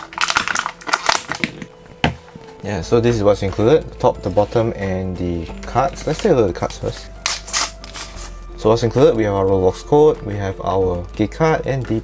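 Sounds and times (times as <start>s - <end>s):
plastic blister tray crackling: 0.0s - 2.4s.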